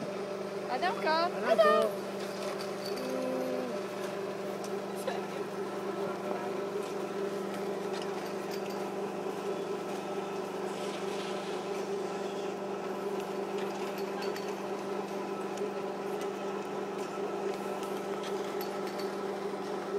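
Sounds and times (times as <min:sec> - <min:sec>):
steady machinery hum: 0:00.0 - 0:19.9.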